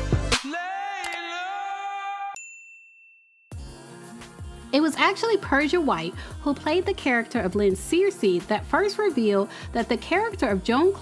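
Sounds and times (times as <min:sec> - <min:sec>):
bright bell ding: 0:02.4 - 0:03.5.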